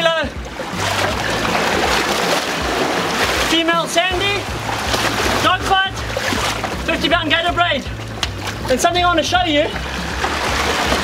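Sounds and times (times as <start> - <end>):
sea water splashing over rocks: 0.2 - 11.0.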